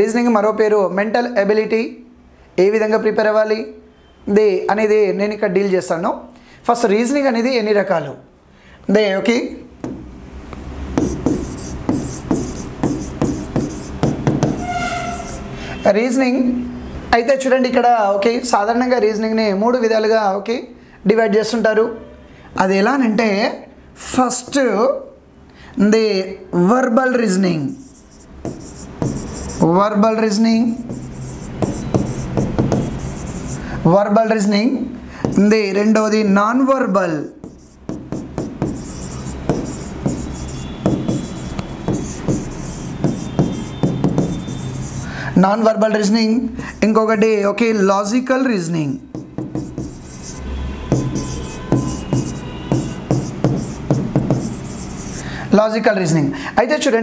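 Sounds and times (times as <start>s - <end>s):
marker writing on board: 9.8s - 10.1s, 10.9s - 15.6s, 27.7s - 29.8s, 30.7s - 33.8s, 35.2s - 35.7s, 37.3s - 45.1s, 49.0s - 55.3s
chalk scratching on chalkboard: 10.9s - 15.8s, 27.7s - 29.8s, 30.7s - 33.8s, 35.2s - 35.6s, 37.3s - 45.1s, 49.0s - 55.3s.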